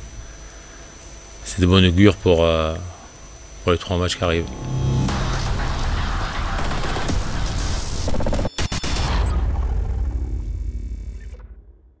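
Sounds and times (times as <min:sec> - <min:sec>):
dense crackling noise: 0:04.3 - 0:11.3
heavy low rumble: 0:04.4 - 0:07.3
sharp hits: 0:04.4 - 0:07.9
music: 0:04.4 - 0:09.0.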